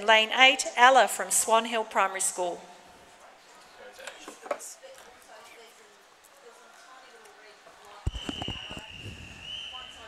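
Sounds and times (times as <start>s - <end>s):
faint voices chattering: 2.8s - 10.0s.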